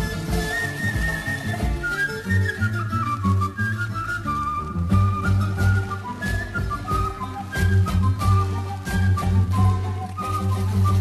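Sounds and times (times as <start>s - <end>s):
flute melody: 0.0s - 11.0s
plucked guitars: 0.0s - 11.0s.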